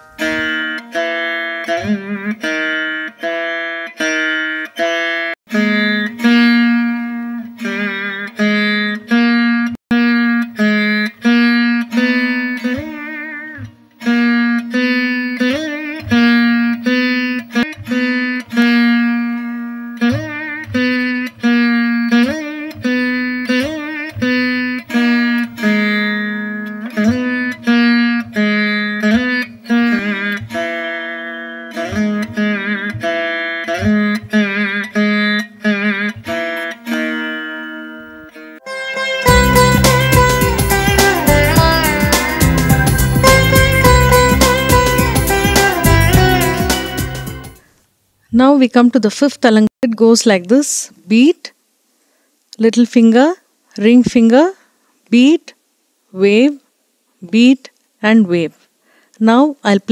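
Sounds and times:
plucked veena melody: 0:00.0 - 0:47.7.

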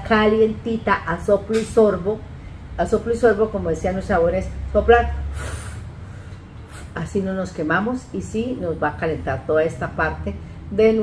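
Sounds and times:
woman blowing out breath: 0:05.3 - 0:07.0.

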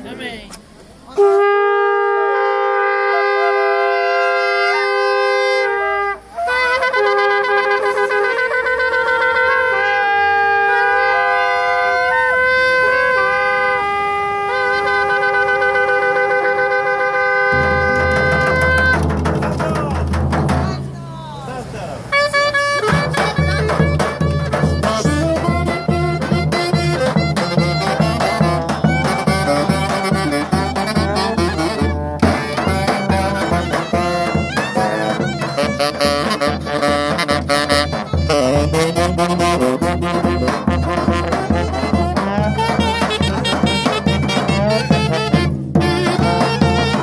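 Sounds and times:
band playing lively tune: 0:00.1 - 0:47.0
shofars blowing: 0:01.0 - 0:47.0
big drum beating: 0:17.5 - 0:21.4, 0:22.8 - 0:47.0.

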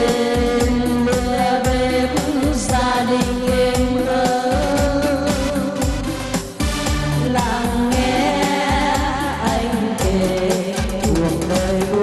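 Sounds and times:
women singing together: 0:00.0 - 0:05.8, 0:07.2 - 0:12.0
electronic keyboard with beat: 0:00.0 - 0:12.0.

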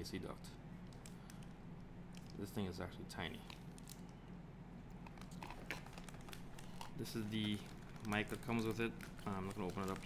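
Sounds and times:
plastic packaging crinkling: 0:03.4 - 0:04.2, 0:05.0 - 0:10.0.

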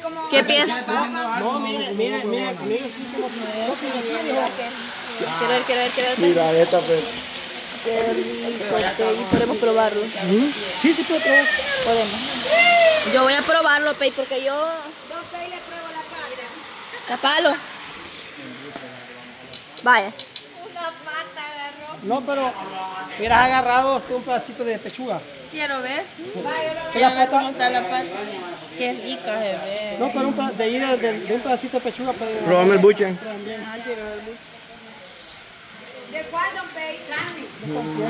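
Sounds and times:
steady background hiss: 0:00.0 - 0:38.0
person exclaiming loudly: 0:11.1 - 0:13.2.

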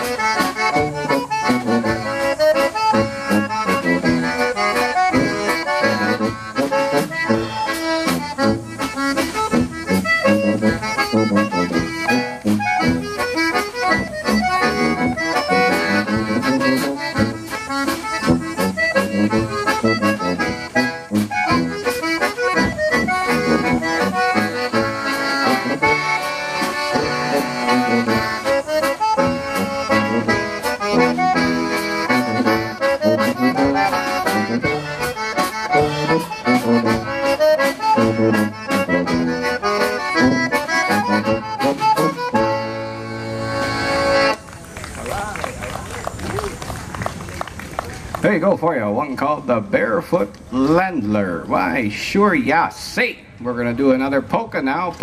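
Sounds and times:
drum kit beat: 0:00.0 - 0:42.7
tuba bass: 0:00.0 - 0:44.4
concertina playing melody: 0:00.0 - 0:44.5.

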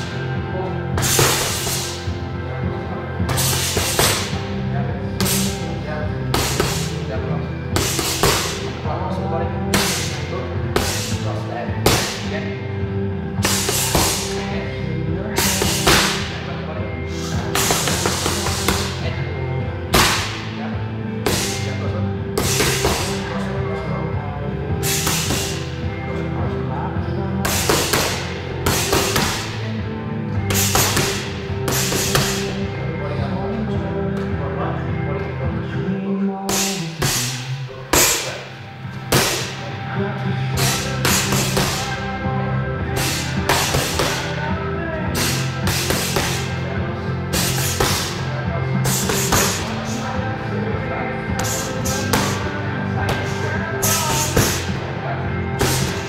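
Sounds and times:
background music: 0:00.0 - 0:56.0
boxing gloves hitting focus mitts: 0:19.9 - 0:20.5, 0:27.5 - 0:29.6, 0:43.0 - 0:44.3, 0:45.1 - 0:46.6, 0:47.3 - 0:48.2, 0:48.8 - 0:49.8.

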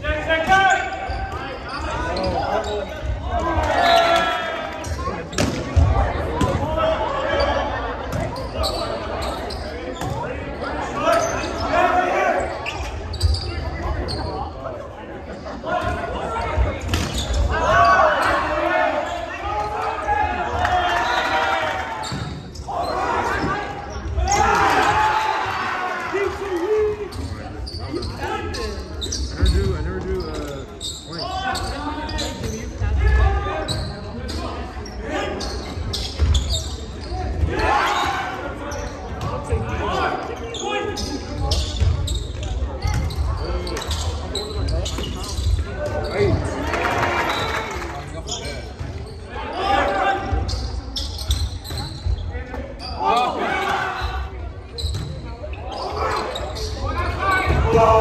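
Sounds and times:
people shouting and cheering: 0:17.4 - 0:28.8, 0:52.9 - 0:54.5, 0:55.7 - 0:58.0.

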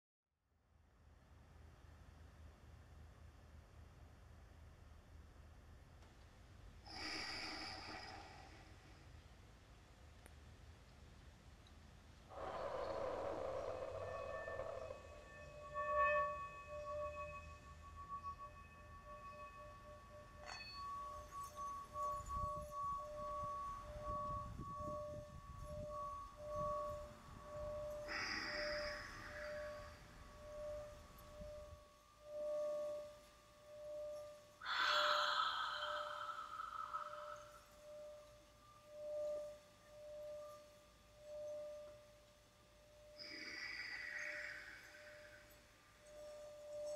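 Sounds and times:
singing bowl ringing: 0:12.3 - 0:46.9
bright hissy swells: 0:27.4 - 0:30.8, 0:34.6 - 0:38.1.

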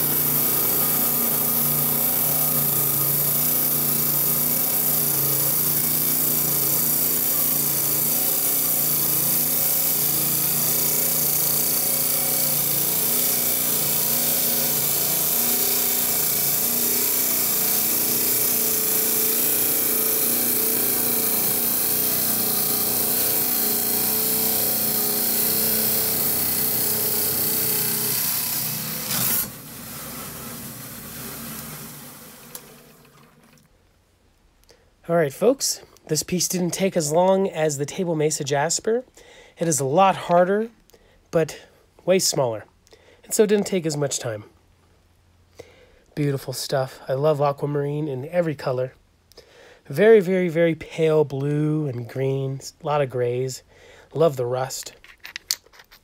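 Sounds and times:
saw blade grinding through stone: 0:00.0 - 0:31.7
saw motor humming: 0:00.0 - 0:33.2.

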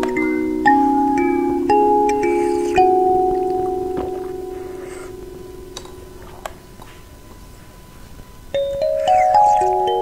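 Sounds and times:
bell-like chime notes: 0:00.0 - 0:06.3.

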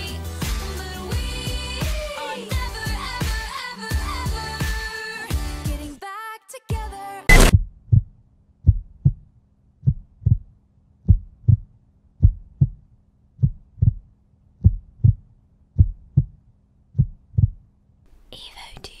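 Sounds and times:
heartbeat thumps: 0:07.3 - 0:09.2, 0:09.8 - 0:12.8, 0:13.4 - 0:16.4, 0:17.0 - 0:17.6.

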